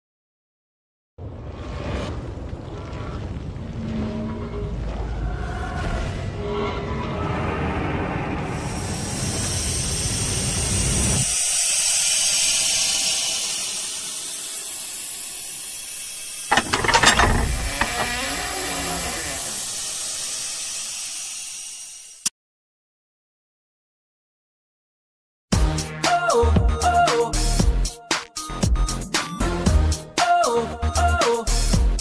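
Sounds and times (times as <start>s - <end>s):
mechanical clicks and clanks: 16.5s - 19.5s
high hiss: 17.9s - 22.3s.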